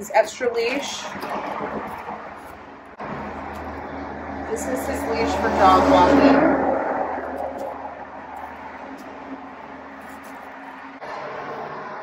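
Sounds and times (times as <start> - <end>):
nylon leash rustling: 0.1 - 3.9, 4.5 - 11.0.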